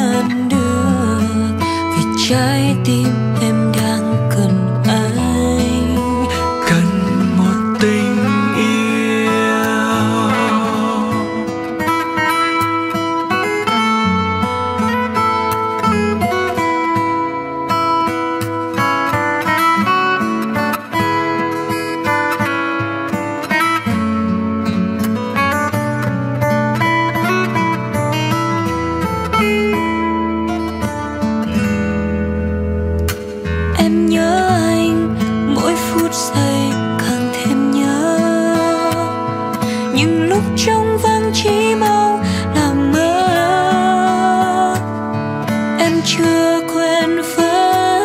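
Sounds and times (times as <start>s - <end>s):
acoustic guitar picking: 0.0s - 48.0s.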